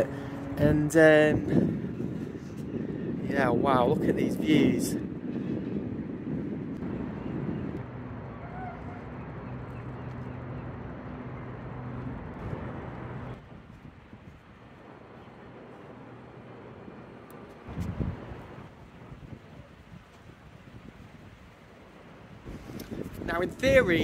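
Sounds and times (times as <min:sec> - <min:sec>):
wind gust: 0:00.0 - 0:09.7, 0:17.6 - 0:24.0
wind on microphone: 0:00.0 - 0:14.9, 0:17.6 - 0:24.0
steady low hum: 0:00.0 - 0:19.2.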